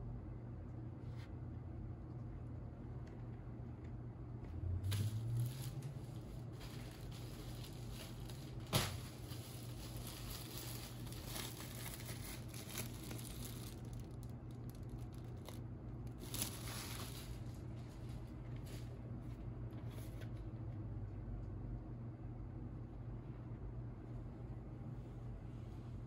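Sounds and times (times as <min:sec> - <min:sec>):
plastic sleeve crinkling: 0:04.9 - 0:18.9.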